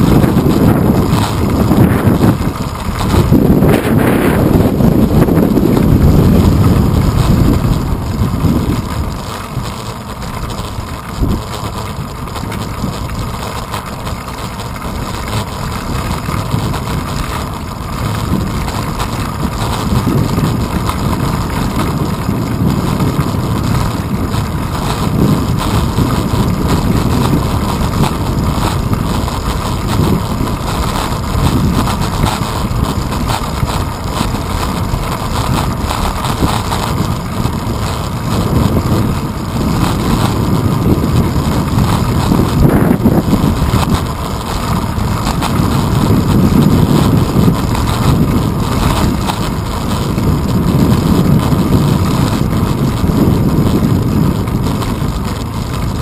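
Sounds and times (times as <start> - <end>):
bicycle rolling over pavement: 0.0 - 56.0
wind buffeting microphone: 0.0 - 56.0.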